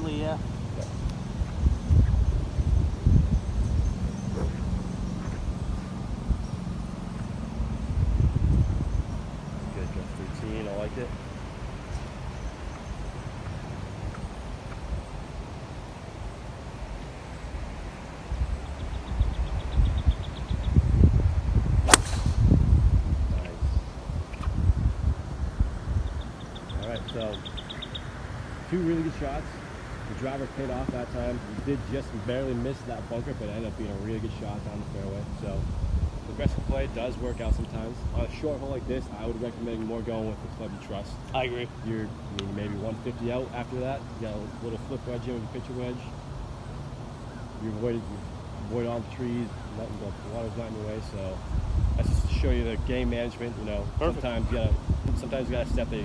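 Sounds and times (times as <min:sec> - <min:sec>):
wind rumbling on microphone: 0:00.0 - 0:46.2, 0:46.9 - 0:56.0
golf club striking ball: 0:21.8 - 0:22.6.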